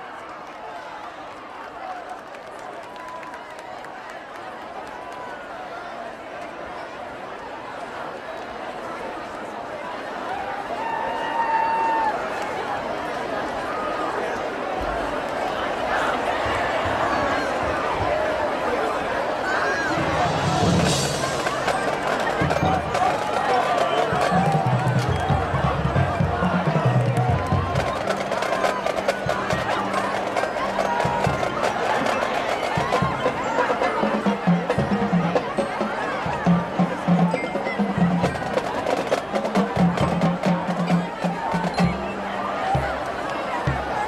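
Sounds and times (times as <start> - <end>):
crowd voices: 0.0 - 44.0
marching band: 13.6 - 44.0
low drum beats: 19.5 - 44.0.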